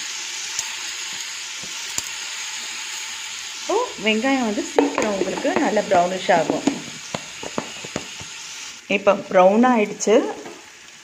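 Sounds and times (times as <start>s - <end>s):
onions sizzling in oil: 0.0s - 11.0s.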